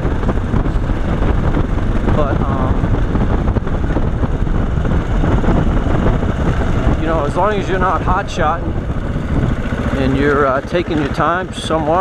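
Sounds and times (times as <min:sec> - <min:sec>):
motorcycle engine on gravel: 0:00.0 - 0:12.0
wind rush on microphone: 0:00.0 - 0:12.0.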